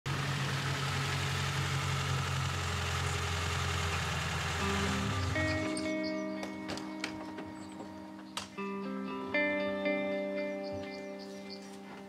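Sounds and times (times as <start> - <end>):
car engine running: 0.1 - 6.3
music: 4.6 - 12.0.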